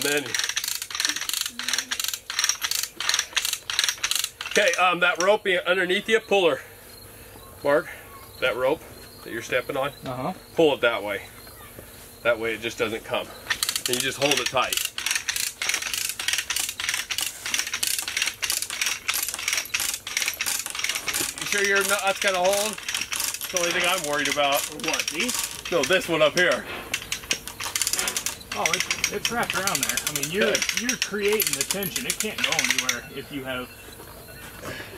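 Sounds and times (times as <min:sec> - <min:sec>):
chain hoist pawl clicking: 0:00.0 - 0:05.4, 0:13.5 - 0:33.3.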